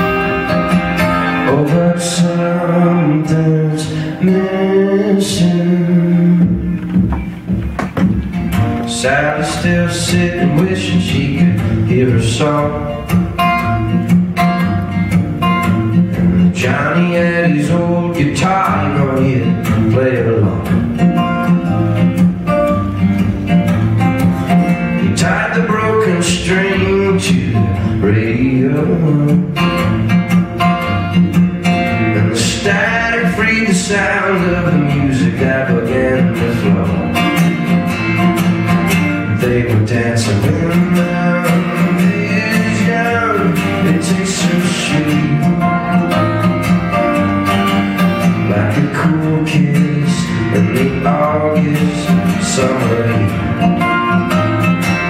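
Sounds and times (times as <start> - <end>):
acoustic guitar strumming: 0.0 - 55.0
person singing folk song: 0.0 - 55.0.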